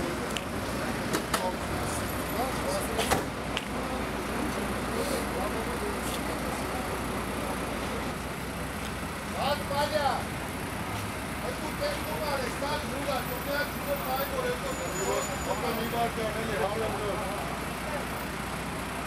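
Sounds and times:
people talking: 0.0 - 8.4, 9.3 - 10.3, 11.4 - 19.0
vehicle engine idling: 0.0 - 19.0.

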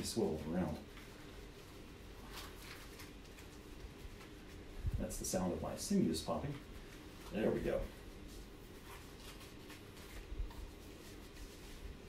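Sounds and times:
strap rustling and brushing: 0.0 - 12.0.

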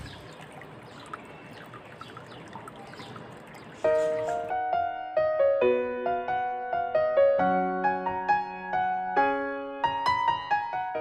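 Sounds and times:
trickle of running water: 0.0 - 4.6
piano music: 3.8 - 11.0.

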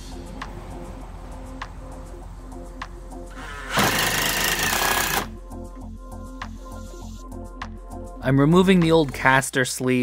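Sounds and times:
background music with a beat: 0.0 - 9.5
cordless drill driving a screw: 3.4 - 5.3.

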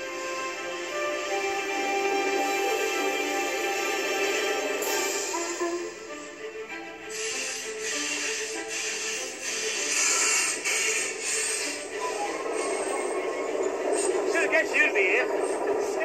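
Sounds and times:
background music: 0.0 - 16.0
bursts of hiss: 7.1 - 12.0.

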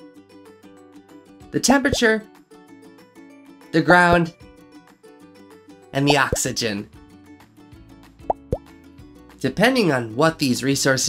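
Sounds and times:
soft background music: 0.0 - 11.0
cartoon plop sound effects: 1.8 - 2.1, 6.0 - 6.5, 8.2 - 8.7.

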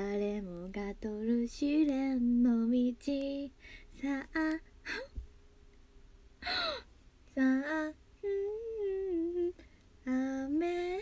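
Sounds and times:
woman humming: 4.9 - 5.2.

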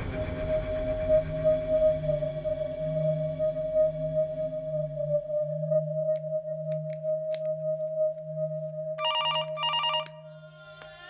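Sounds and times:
background music: 0.0 - 11.0
telephone ringing with warbling trill: 9.0 - 10.3.

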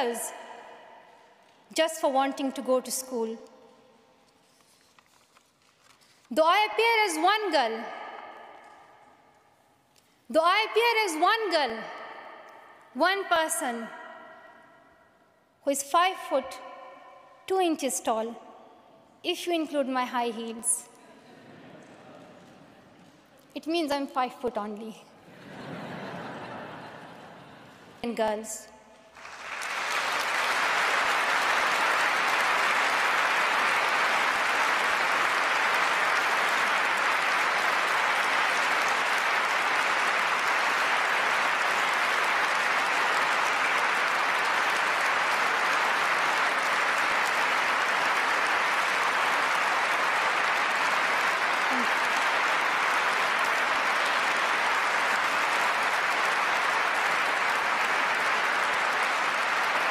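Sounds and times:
large audience applauding: 29.1 - 59.9.

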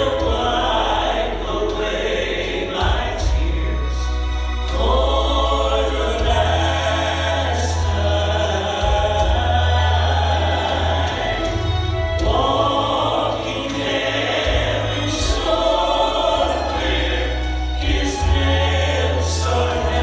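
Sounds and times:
deep held bass notes: 0.0 - 20.0
group singing gospel song: 0.0 - 20.0.

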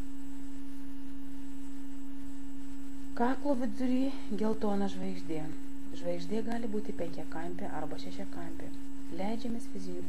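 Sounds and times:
faint low hum: 0.0 - 10.0
steady pure tone: 0.0 - 10.0.

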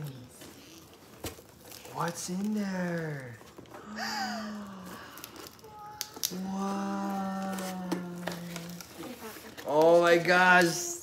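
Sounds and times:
person saying ooh in wonder: 6.3 - 8.8.

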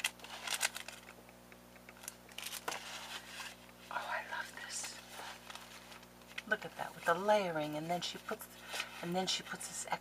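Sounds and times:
cellophane crinkling: 0.0 - 1.1, 2.0 - 3.8
paper cards rustling: 0.0 - 1.2, 1.8 - 3.8, 4.6 - 7.2.

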